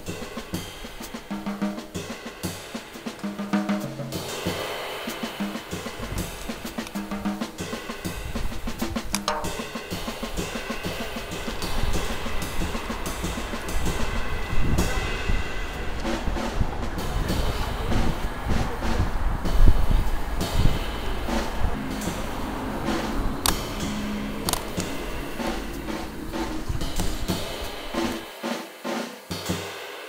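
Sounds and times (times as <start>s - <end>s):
drum kit playing: 0.0s - 30.0s.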